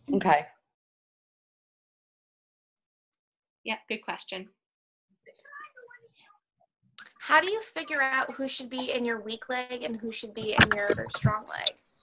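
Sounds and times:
faint voice speaking: 0:05.3 - 0:06.3, 0:10.4 - 0:11.7.

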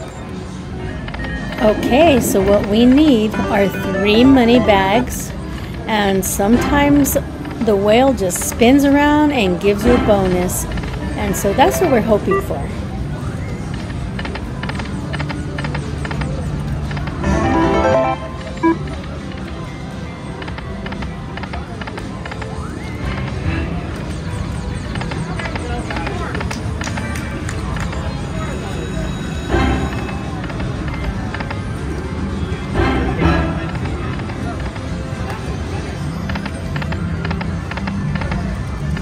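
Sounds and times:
casino chatter: 0:00.0 - 0:39.0
slot machine game music: 0:01.0 - 0:05.9, 0:11.4 - 0:12.7, 0:17.2 - 0:19.2
slot machine reels spinning: 0:17.2 - 0:18.8.

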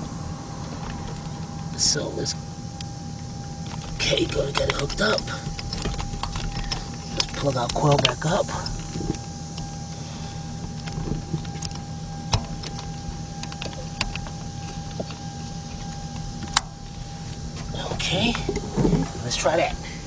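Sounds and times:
steady hum with thin tone: 0:00.0 - 0:20.0.

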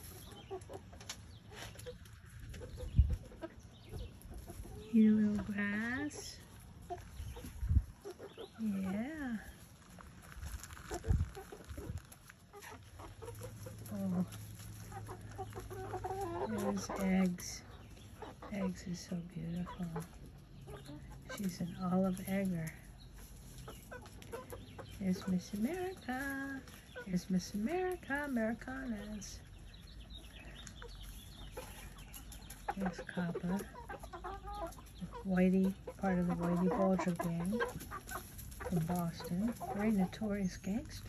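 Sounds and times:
hens clucking: 0:00.0 - 0:41.0.

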